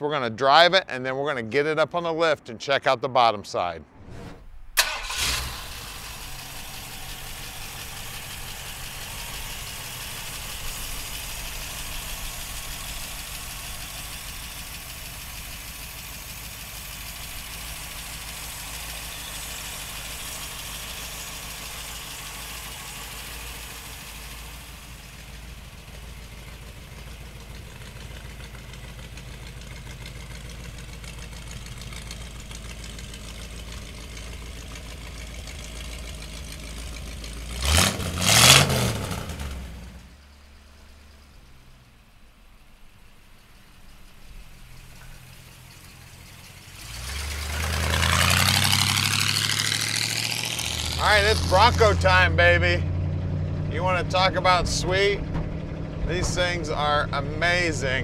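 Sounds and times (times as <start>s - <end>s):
engine starting and idling: 4.0s - 58.0s.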